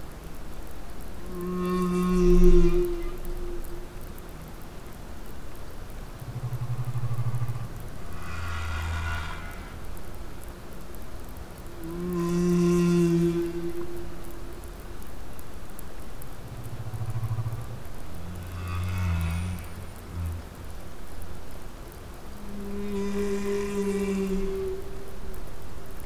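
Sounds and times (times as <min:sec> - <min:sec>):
whale moans: 0:01.2 - 0:04.6, 0:06.2 - 0:15.1, 0:16.7 - 0:21.0, 0:22.2 - 0:25.8
low pulsed whale grunt: 0:06.4 - 0:09.9, 0:11.8 - 0:14.6, 0:22.3 - 0:25.2.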